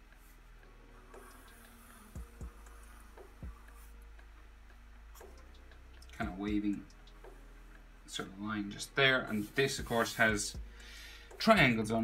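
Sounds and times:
soft ticks: 0.0s - 12.0s
steady electrical hum: 0.0s - 12.0s.

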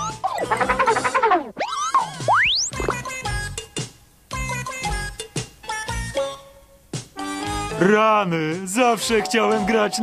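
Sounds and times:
rising slide whistle: 0.0s - 2.8s
music: 0.0s - 10.0s.

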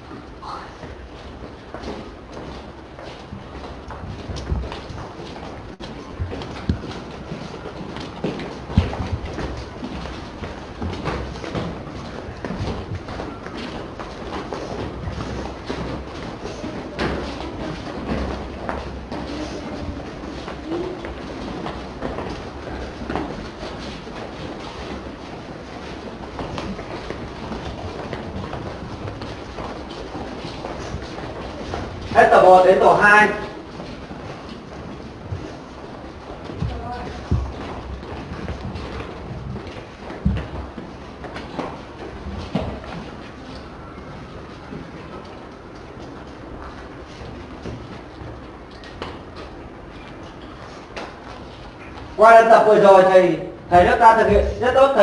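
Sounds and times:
steady low hum: 0.0s - 52.2s
many footsteps shuffling: 0.0s - 55.0s.

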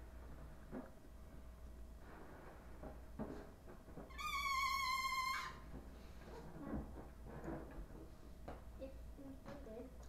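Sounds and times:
balloon neck squealing: 4.1s - 5.7s.

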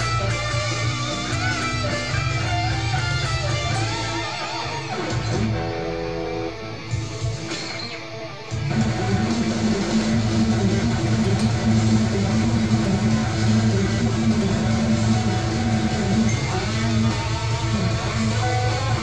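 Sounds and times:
electric guitar playing metal: 0.0s - 19.0s.

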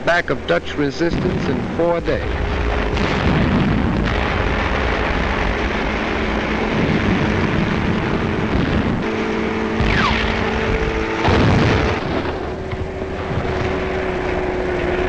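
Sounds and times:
rumble of engines and explosions: 0.0s - 15.0s
steady engine drone: 0.0s - 15.0s.

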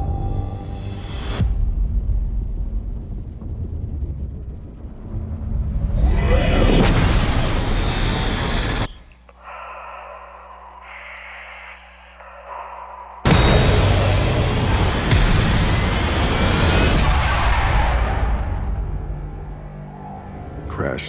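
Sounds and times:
deep rumble: 0.0s - 21.0s
steady hum with held tones: 6.9s - 16.8s.

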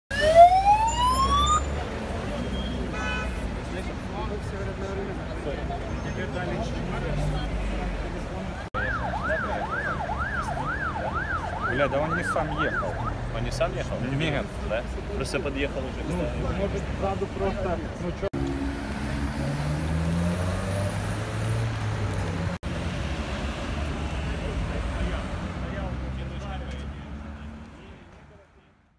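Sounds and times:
ambulance siren wailing: 0.1s - 1.8s, 8.8s - 13.3s
traffic rumble: 0.1s - 28.9s
vehicle engines running: 3.4s - 28.3s
car driving past: 18.4s - 27.7s.

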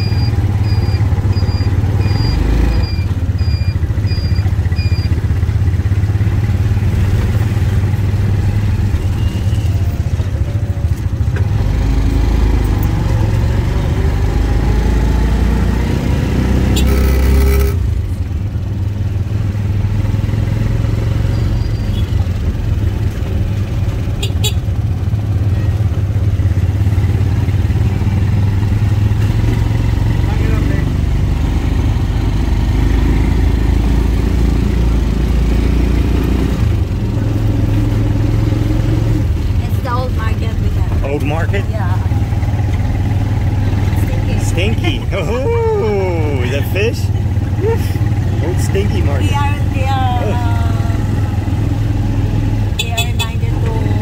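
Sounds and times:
auto-rickshaw engine running: 0.0s - 54.0s.

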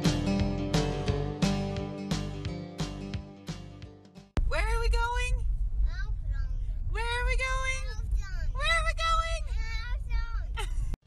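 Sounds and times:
car road noise: 4.4s - 10.6s.

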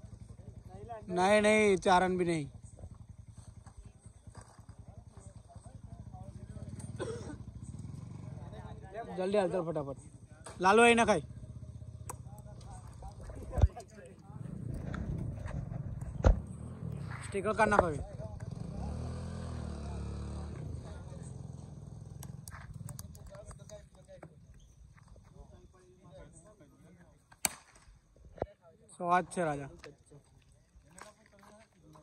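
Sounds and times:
engine running with low pulsing: 0.0s - 26.8s
low rumble: 11.2s - 23.5s
faint voices: 11.9s - 27.3s
sharp clicks: 22.0s - 24.6s.

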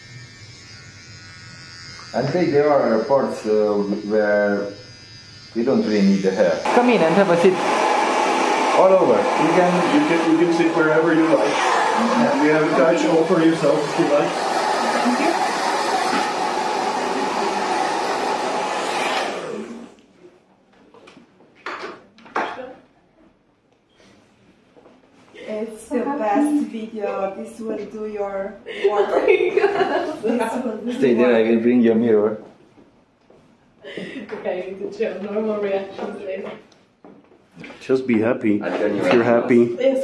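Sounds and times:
electric hair clipper buzzing: 0.0s - 20.0s.

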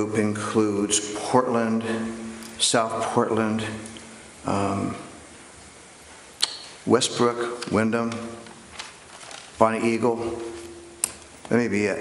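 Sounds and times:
man speaking: 0.0s - 5.2s, 6.8s - 8.6s, 9.6s - 12.0s
sharp click: 6.4s - 6.7s.

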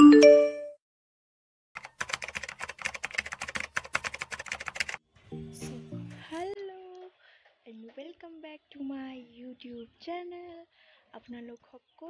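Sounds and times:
rapid dense clicking: 1.8s - 5.0s.

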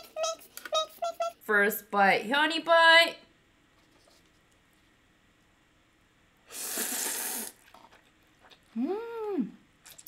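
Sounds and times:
noodle slurp: 6.5s - 8.7s.

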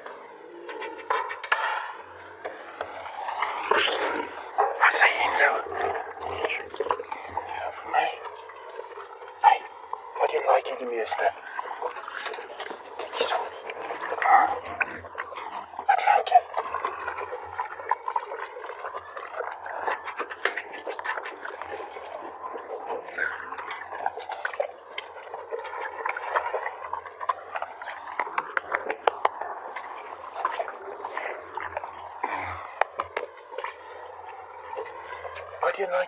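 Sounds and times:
tiger chewing and crunching meat: 0.0s - 36.0s.

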